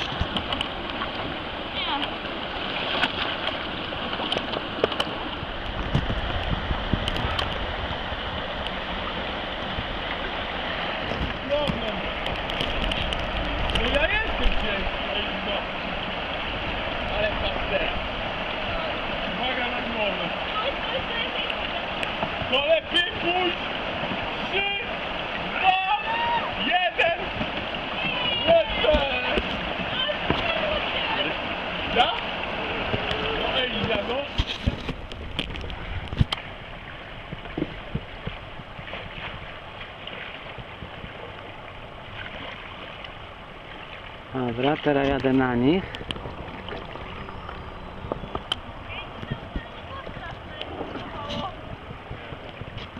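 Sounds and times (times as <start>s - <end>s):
river water rushing: 0.0s - 52.9s
voices calling out: 24.4s - 34.3s, 44.4s - 51.9s.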